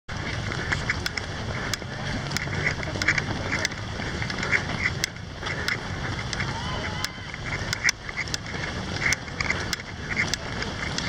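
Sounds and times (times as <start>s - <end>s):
runners' footfalls on asphalt: 0.1s - 11.0s.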